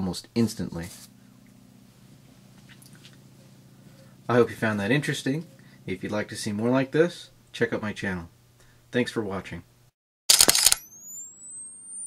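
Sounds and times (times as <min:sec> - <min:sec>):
camera shutter clatter: 0:10.3 - 0:10.9
camera flash recharging whine: 0:10.3 - 0:12.0.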